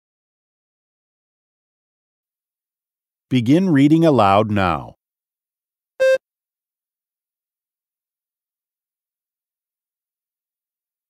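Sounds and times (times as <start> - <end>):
short electronic beep: 6.0 - 6.2.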